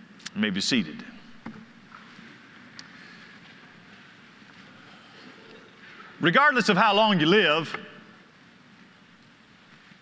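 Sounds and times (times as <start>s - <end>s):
rustle of people settling: 1.1s - 6.2s.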